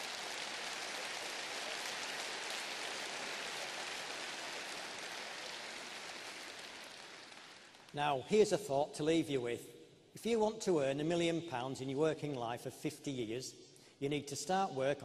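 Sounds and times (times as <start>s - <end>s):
audience applauding: 0.0s - 8.0s.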